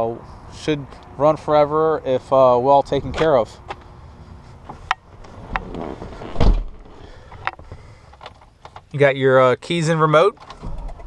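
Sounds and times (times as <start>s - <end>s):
dull thump: 5.6s - 6.9s.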